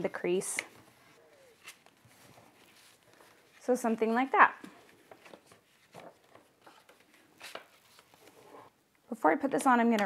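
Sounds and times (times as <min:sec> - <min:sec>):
cardstock rustling and tapping: 0:04.6 - 0:08.4.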